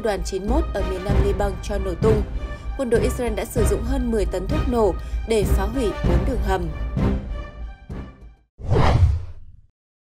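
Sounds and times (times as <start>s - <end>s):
background music: 0.0s - 8.5s.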